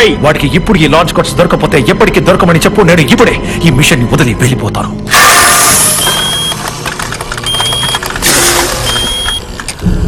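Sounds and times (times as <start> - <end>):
electronic beeps: 6.0 - 6.6, 7.4 - 9.5.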